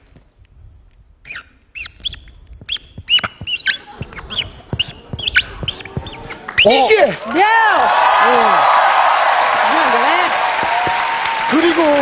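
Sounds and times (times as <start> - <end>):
marker squeaking on paper: 1.2 - 7.1.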